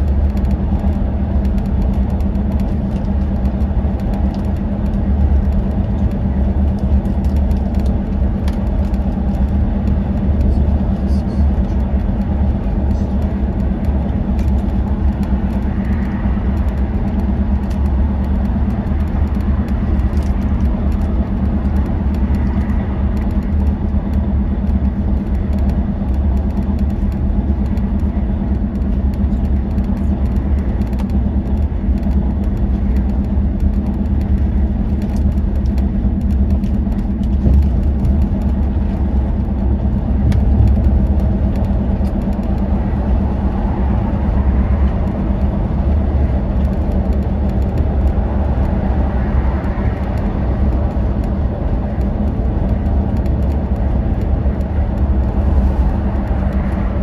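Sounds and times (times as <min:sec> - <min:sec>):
diesel engine drone: 0:00.0 - 0:57.0
tyre and road noise: 0:00.0 - 0:57.0.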